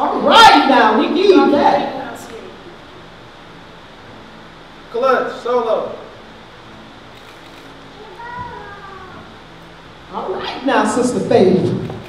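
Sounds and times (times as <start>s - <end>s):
low room hum: 0.0s - 12.0s
faint high-pitched voice: 8.0s - 9.3s.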